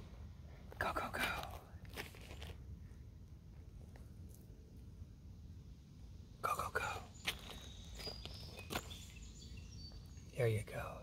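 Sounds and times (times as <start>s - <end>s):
steady low rumble: 0.0s - 8.5s.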